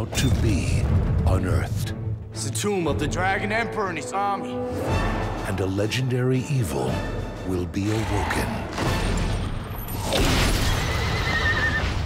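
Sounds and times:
horse whinnying: 0:10.6 - 0:12.0.

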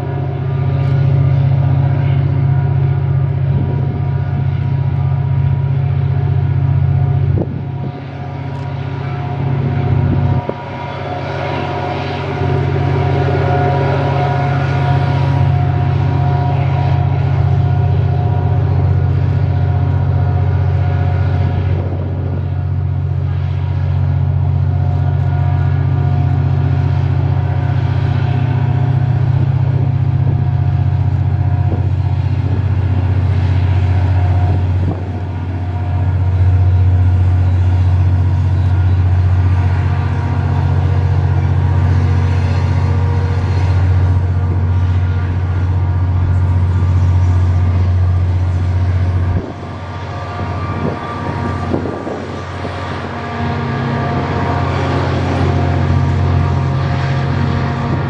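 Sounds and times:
diesel locomotive engine drone: 0:00.0 - 0:58.0.

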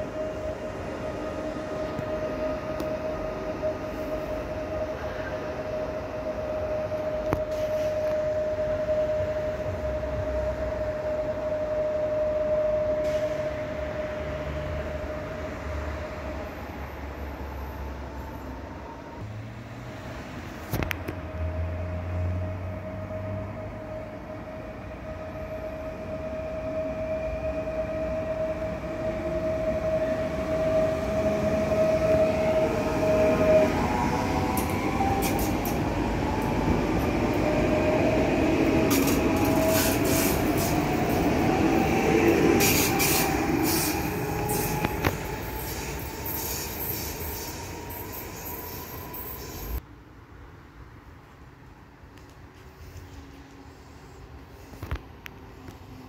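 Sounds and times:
electric train whine: 0:00.0 - 0:56.0
train wheel and rail noise: 0:00.0 - 0:56.0.

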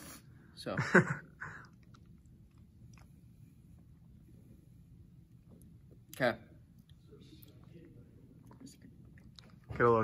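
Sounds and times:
person laughing: 0:00.7 - 0:01.7
sipping and swallowing: 0:01.4 - 0:04.2, 0:05.1 - 0:09.8.

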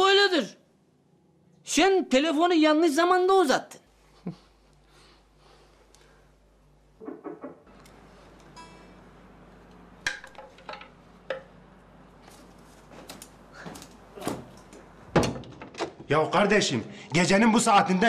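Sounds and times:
door opening: 0:07.0 - 0:07.7.

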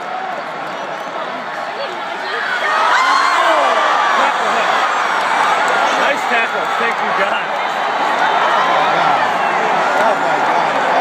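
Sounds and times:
stadium crowd yelling: 0:00.0 - 0:11.0.

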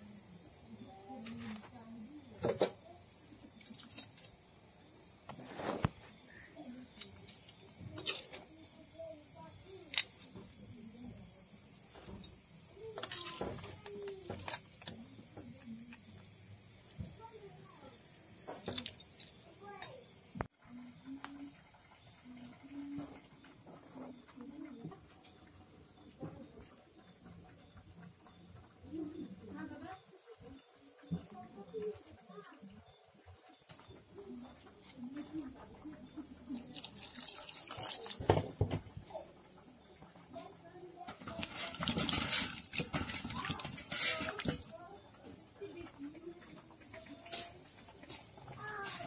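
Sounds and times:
brief hissing noises: 0:05.2 - 0:06.4.

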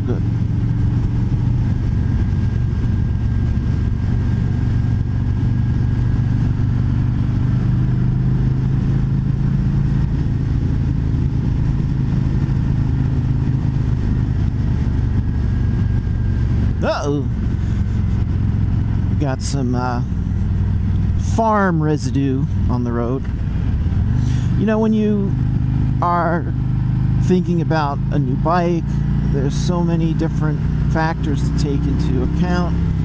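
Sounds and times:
wind rush: 0:00.0 - 0:19.2
motorcycle engine cruising: 0:00.0 - 0:33.0.

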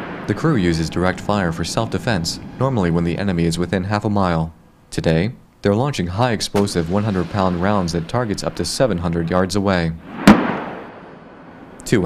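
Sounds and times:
artillery boom rumbling: 0:00.0 - 0:04.0, 0:06.6 - 0:11.8.

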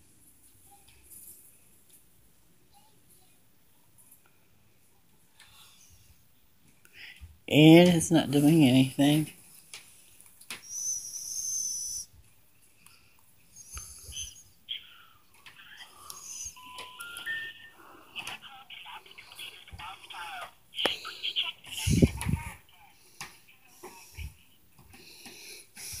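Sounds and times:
high whistle: 0:10.6 - 0:12.1
faint phone-line noise: 0:13.8 - 0:24.6.

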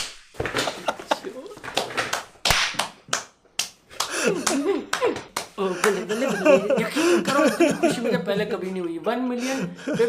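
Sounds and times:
sharp slap-like cracks: 0:02.4 - 0:03.8.

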